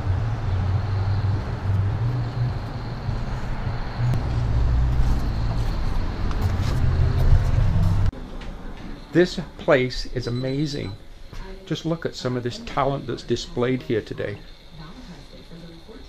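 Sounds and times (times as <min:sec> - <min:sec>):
road traffic going by: 0:00.0 - 0:09.7.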